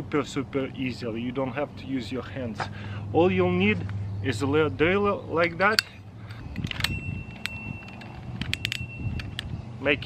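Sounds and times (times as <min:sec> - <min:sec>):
drill chuck clicking and rattling: 0:05.8 - 0:09.5.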